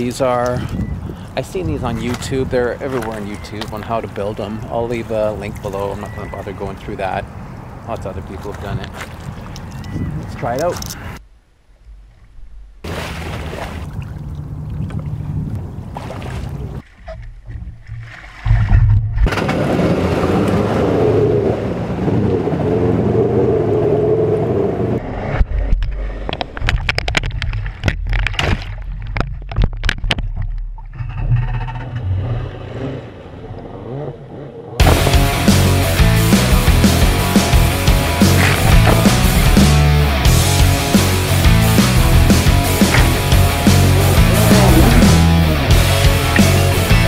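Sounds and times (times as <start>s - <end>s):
water sloshing and splashing: 0.5s - 11.0s, 11.8s - 20.9s, 26.3s - 36.0s, 36.7s - 39.8s, 40.6s - 47.0s
rumbling wash of water: 12.7s - 16.8s, 18.0s - 25.0s, 32.4s - 47.0s.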